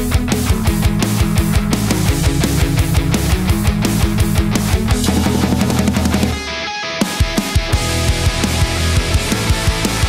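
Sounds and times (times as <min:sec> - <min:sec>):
electric guitars: 0:00.0 - 0:10.0
fast drum kit: 0:00.0 - 0:10.0.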